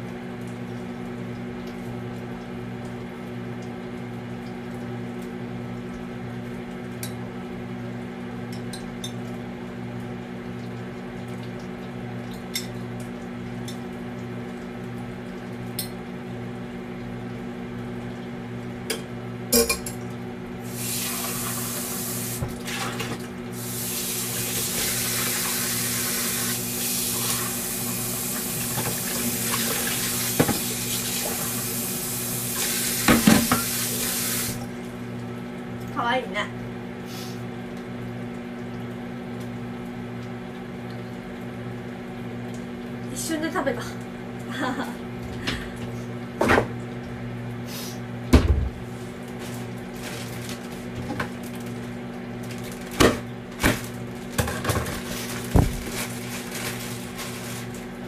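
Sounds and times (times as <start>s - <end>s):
tap running into sink: 28.4s - 31.5s, 32.6s - 34.6s, 54.4s - 55.8s.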